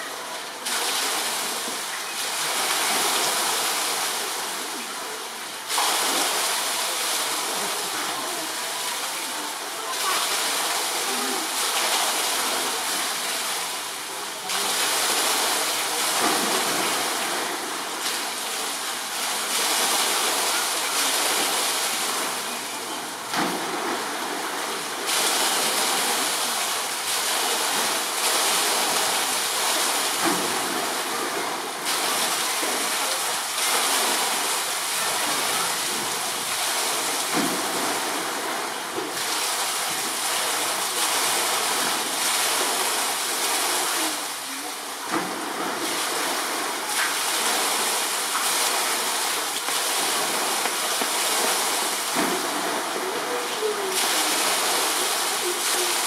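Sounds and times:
running water rushing: 0:00.0 - 0:56.0.

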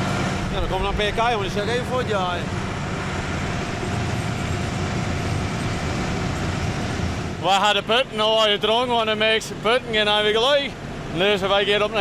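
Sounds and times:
tractor engine running steadily: 0:00.0 - 0:12.0.

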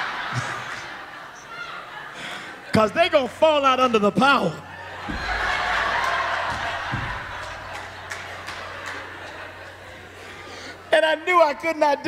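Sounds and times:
audience laughing: 0:00.0 - 0:04.1, 0:04.7 - 0:10.9.

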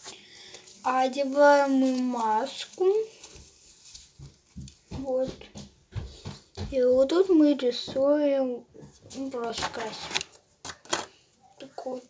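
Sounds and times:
face mask handling bumps and rustling: 0:00.9 - 0:06.9, 0:08.8 - 0:11.2.

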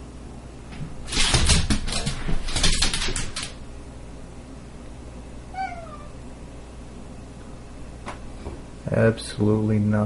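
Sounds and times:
meow-like call falling in pitch: 0:05.5 - 0:06.2.

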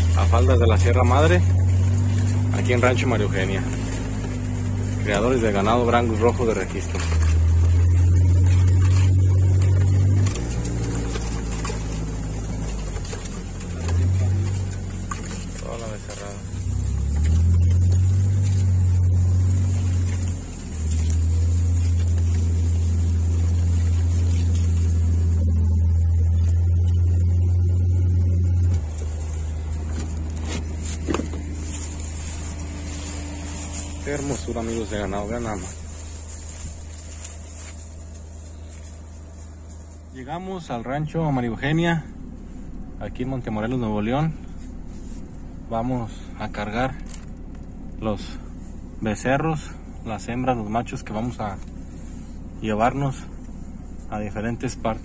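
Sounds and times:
utility vehicle engine droning: 0:00.0 - 0:55.0.

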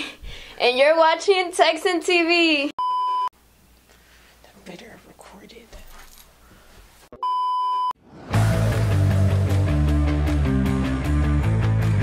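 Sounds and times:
rock music with guitar: 0:08.3 - 0:12.0.

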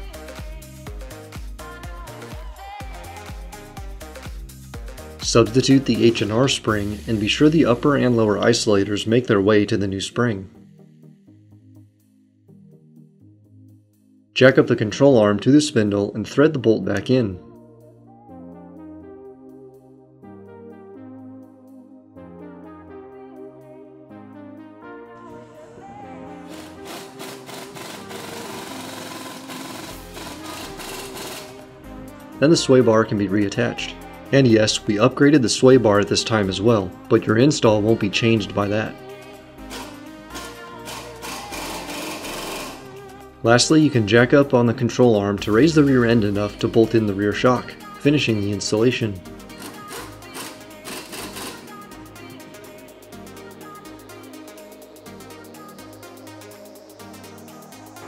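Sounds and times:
upbeat electronic music: 0:00.0 - 0:58.0
impact wrench rattling: 0:26.5 - 0:31.6, 0:39.7 - 0:42.9, 0:49.6 - 0:51.7.

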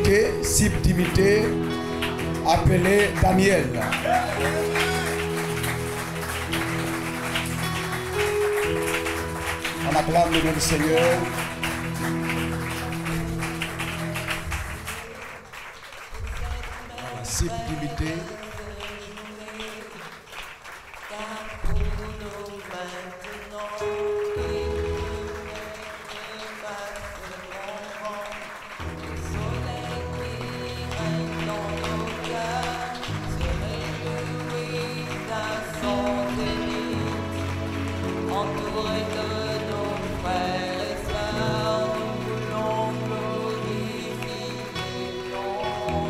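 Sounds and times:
church keyboard chords: 0:00.0 - 0:18.7, 0:23.5 - 0:46.0
congregation applause: 0:00.0 - 0:46.0.

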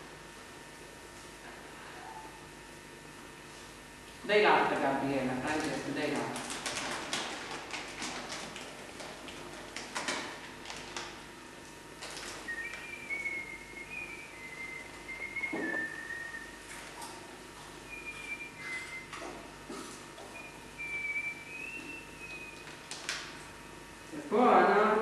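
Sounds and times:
person whistling slow tune: 0:12.5 - 0:16.6, 0:17.9 - 0:19.1, 0:20.4 - 0:22.6.

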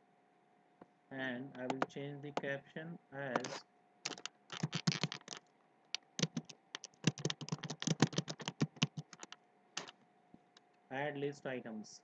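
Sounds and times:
computer keyboard typing: 0:01.6 - 0:01.9, 0:03.4 - 0:05.5, 0:06.2 - 0:09.9.

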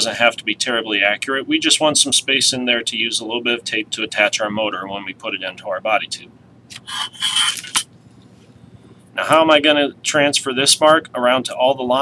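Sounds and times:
metal straightedge scraping mat: 0:06.9 - 0:07.8.

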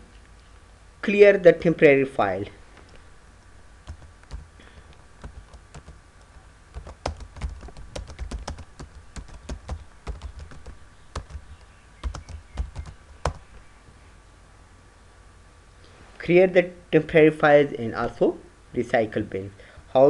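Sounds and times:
typing on computer keyboard: 0:03.8 - 0:06.0, 0:06.7 - 0:13.4.

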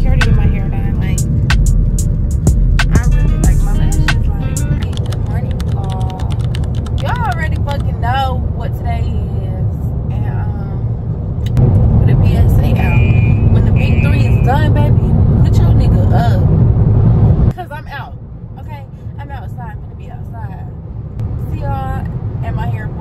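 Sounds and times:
woman talking: 0:00.0 - 0:01.2, 0:03.0 - 0:10.9, 0:12.1 - 0:16.5, 0:17.5 - 0:20.8, 0:21.4 - 0:23.0
road and engine noise in car: 0:00.0 - 0:23.0.

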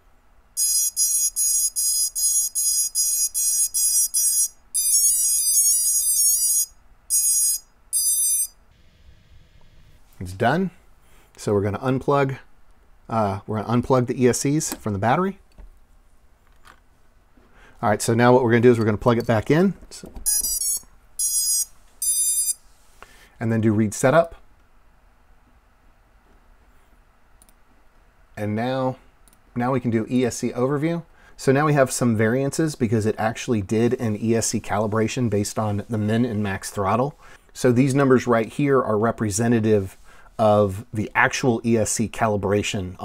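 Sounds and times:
drone motors beeping: 0:00.6 - 0:09.8, 0:20.3 - 0:22.6.

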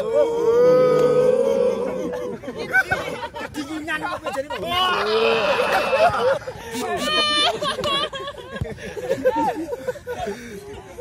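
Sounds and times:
young men chatting and laughing: 0:00.0 - 0:11.0.

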